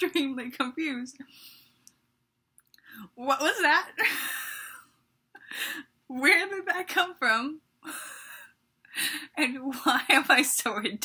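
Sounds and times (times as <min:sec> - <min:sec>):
woman speaking: 0:00.0 - 0:01.2, 0:03.0 - 0:04.2, 0:06.1 - 0:07.6, 0:09.3 - 0:11.0.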